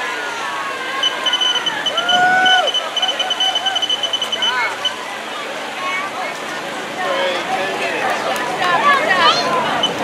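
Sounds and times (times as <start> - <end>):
spectators talking and calling out: 0.0 - 10.0
short high electronic beeps: 1.0 - 5.0.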